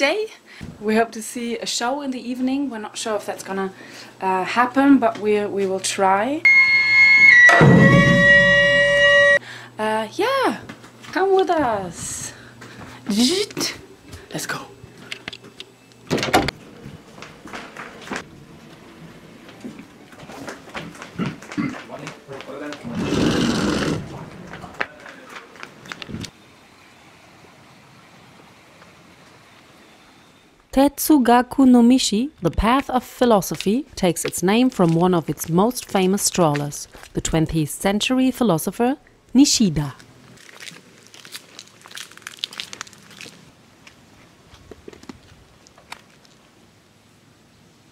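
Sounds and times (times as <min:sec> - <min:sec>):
faint outdoor hiss: 0:00.0 - 0:07.4, 0:09.4 - 0:47.9
footsteps on gravel: 0:33.5 - 0:37.2.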